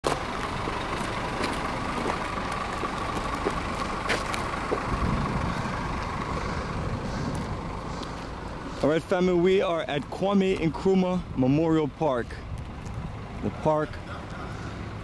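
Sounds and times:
bus engine idling: 0:00.0 - 0:15.0.

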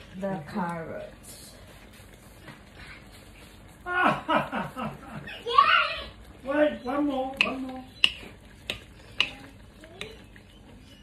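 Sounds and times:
spoon stirring stew: 0:06.2 - 0:11.0
spoon knocking on pan: 0:07.3 - 0:10.2.

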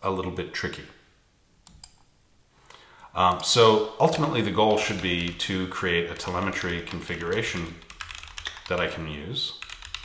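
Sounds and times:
computer keyboard clicks: 0:06.2 - 0:08.9, 0:09.6 - 0:10.0.

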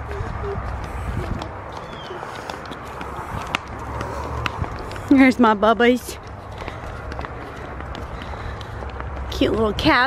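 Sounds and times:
footsteps on pavement: 0:00.0 - 0:10.0.

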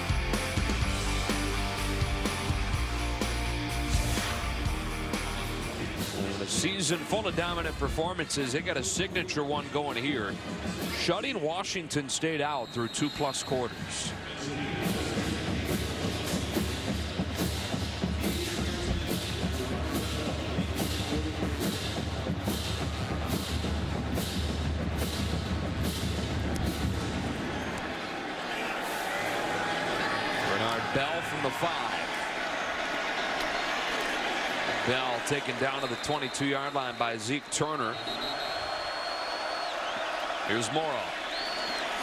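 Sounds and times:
crowd noise: 0:00.0 - 0:42.0
stadium music with drum beat: 0:00.0 - 0:42.0.

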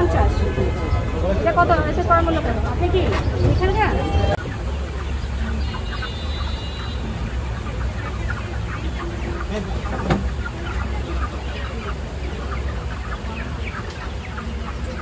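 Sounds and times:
chickens clucking and calling: 0:00.0 - 0:15.0.

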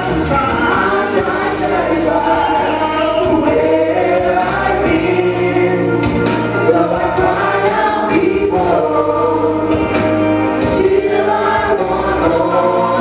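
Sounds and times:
gospel singing through microphones: 0:00.0 - 0:13.0.

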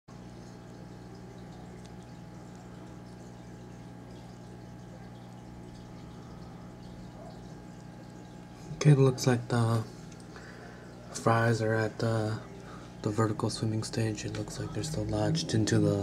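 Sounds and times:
water trickling and dripping: 0:00.1 - 0:16.0
faint low hum: 0:00.2 - 0:16.0.

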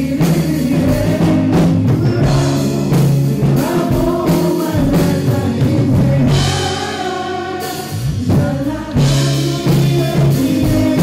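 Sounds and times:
pop-rock song with vocals: 0:00.0 - 0:11.0.

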